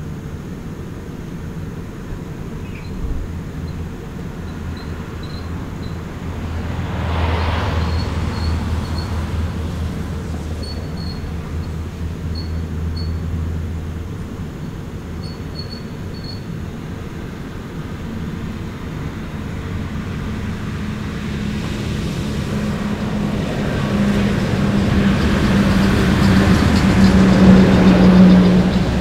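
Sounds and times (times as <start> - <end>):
tyre noise on road: 0.0 - 29.0
vehicle engine approaching: 2.5 - 16.4, 17.0 - 29.0.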